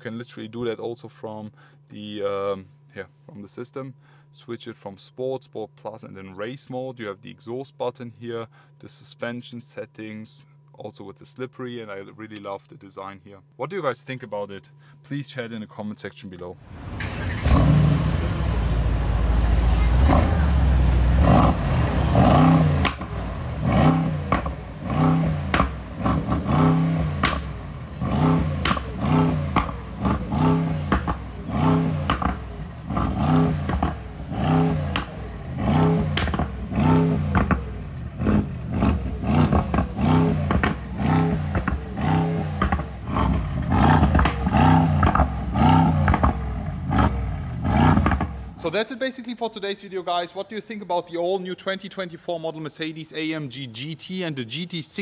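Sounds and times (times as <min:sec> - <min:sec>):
sports car engine revving: 0:16.6 - 0:48.6.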